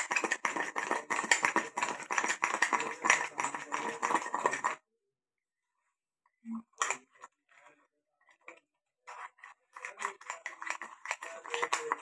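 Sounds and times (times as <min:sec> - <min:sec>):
metal spoon beating in ceramic mug: 0:00.0 - 0:04.8.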